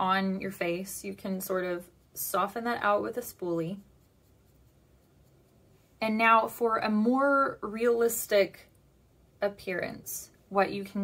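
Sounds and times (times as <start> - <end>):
brush brushing over skin: 0.0 - 7.2.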